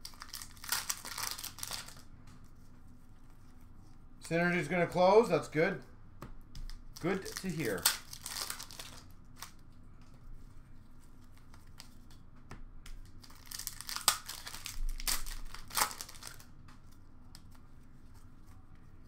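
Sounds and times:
wrapper tearing and crinkling: 0.0s - 2.0s, 7.0s - 9.6s, 13.2s - 16.5s.

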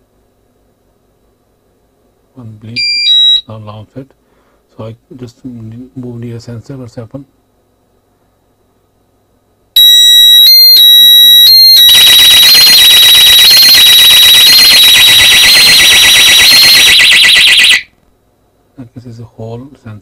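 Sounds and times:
high-pitched alarm beeps: 2.8s - 3.4s, 9.8s - 17.8s
warbling alarm siren: 9.8s - 17.9s.

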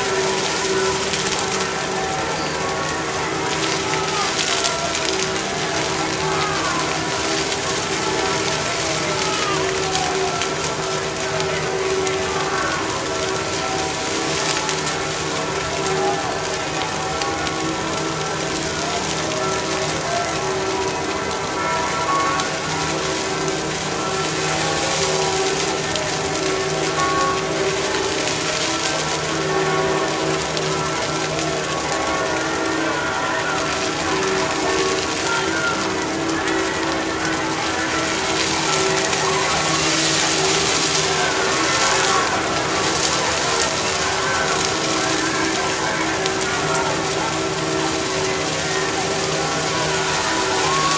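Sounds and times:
bonfire crackling: 0.0s - 50.9s
falling rain: 0.0s - 50.9s
music with long held notes: 0.0s - 50.9s.

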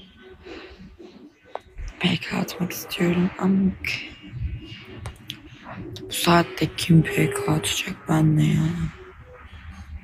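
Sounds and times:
person breathing softly: 0.4s - 1.2s.

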